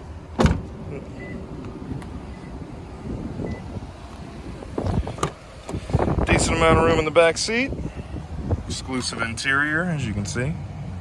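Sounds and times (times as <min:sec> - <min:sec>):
wind buffeting microphone: 0:01.6 - 0:09.3.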